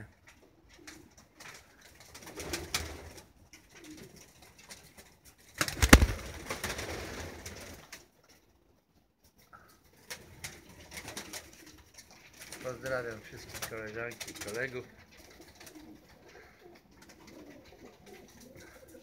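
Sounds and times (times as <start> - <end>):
pigeons cooing: 14.3 - 19.0.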